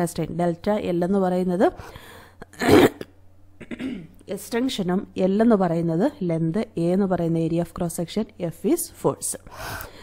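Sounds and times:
person coughing: 2.5s - 4.2s.

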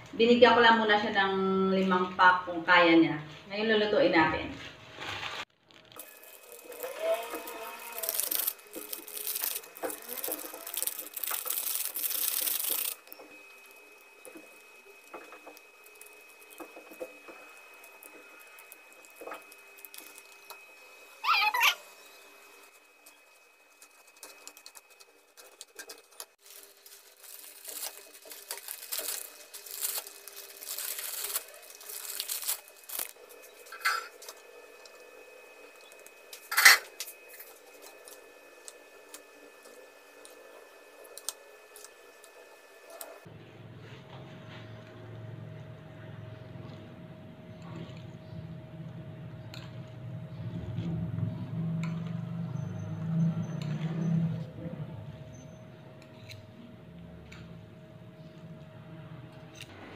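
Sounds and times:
seasoning packets crinkling and tearing: 5.0s - 20.6s, 23.1s - 35.0s, 35.6s - 43.2s.

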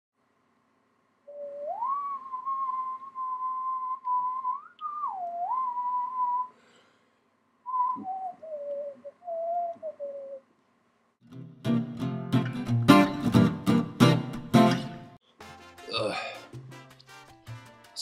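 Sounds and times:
person whistling a slow tune: 1.3s - 6.6s, 7.7s - 10.4s.

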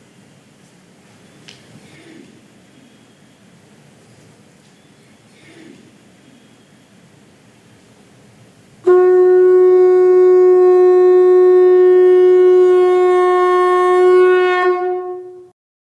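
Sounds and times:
conch shell blown: 8.8s - 15.6s.

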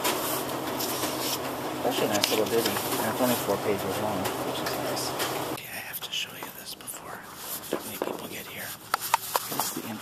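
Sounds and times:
man whispering: 5.6s - 8.8s.

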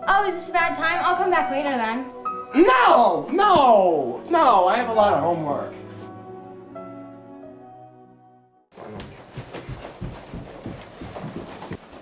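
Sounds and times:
footsteps on carpeted stairs: 8.8s - 12.0s.

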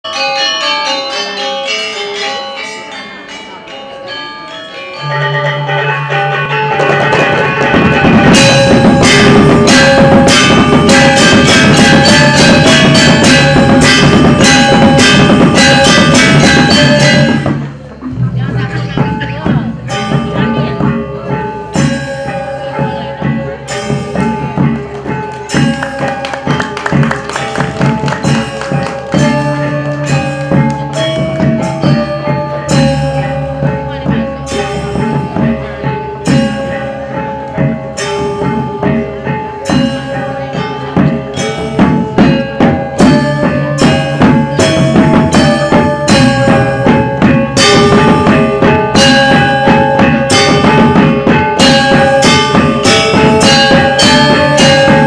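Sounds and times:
gamelan metallophones playing: 0.0s - 55.0s
drum beats: 5.1s - 55.0s
metallophone strokes ringing: 36.2s - 55.0s.

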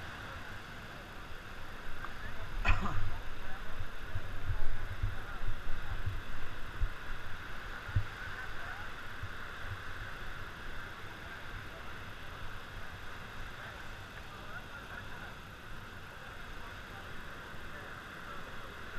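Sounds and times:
steady outdoor hiss: 0.0s - 18.9s
wind buffeting microphone: 1.7s - 10.6s.

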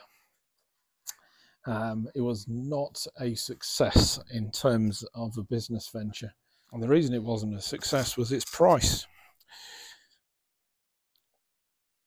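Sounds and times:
man breathing in: 9.1s - 10.2s.

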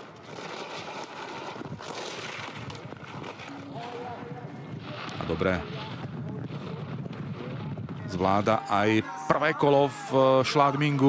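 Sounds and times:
skis scraping on icy snow: 0.0s - 4.2s
faint voices: 3.4s - 11.0s.

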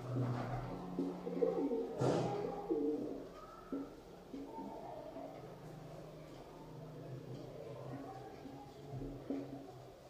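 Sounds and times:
pigeons cooing: 0.0s - 4.0s.

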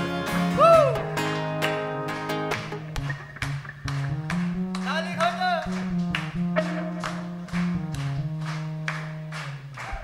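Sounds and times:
acoustic guitar: 0.0s - 10.0s
keyboard sustained notes: 2.8s - 9.9s.

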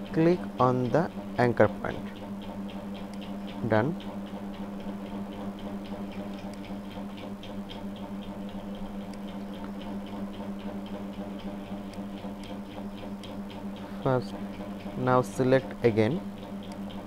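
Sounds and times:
low electrical hum: 0.0s - 17.0s
faint computer clicks: 2.1s - 10.7s, 16.6s - 17.0s.

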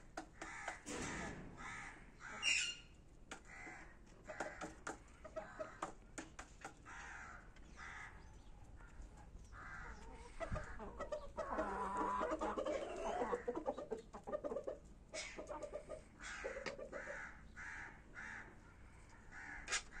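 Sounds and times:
chickens calling: 0.0s - 20.0s.

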